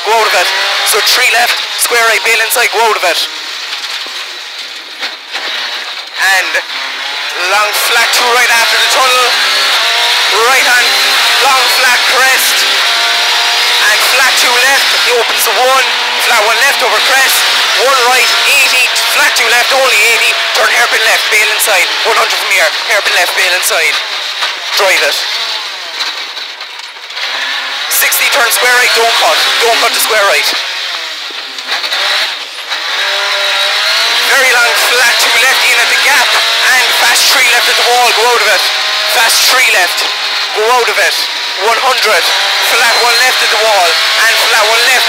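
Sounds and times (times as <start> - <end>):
car engine and road noise: 0.0 - 45.0.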